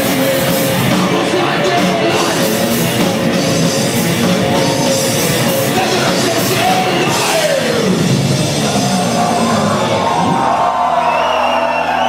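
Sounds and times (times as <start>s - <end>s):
crowd cheering and whooping: 7.0s - 12.0s.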